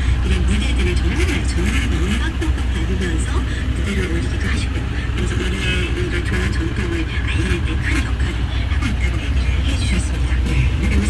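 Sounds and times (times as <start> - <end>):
truck engine idling: 0.0 - 11.0
talk from radio: 0.2 - 11.0.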